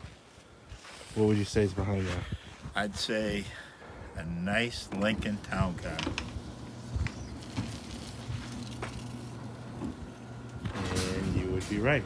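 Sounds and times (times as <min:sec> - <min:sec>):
voices: 0:01.2 - 0:08.0, 0:09.8 - 0:12.0
garage door motor hum: 0:04.6 - 0:12.0.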